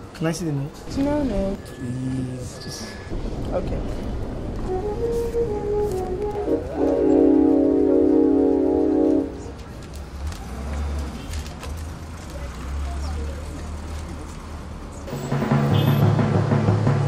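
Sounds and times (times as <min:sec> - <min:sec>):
low rumble: 0:00.9 - 0:06.9
held synthesizer chord: 0:04.7 - 0:09.4.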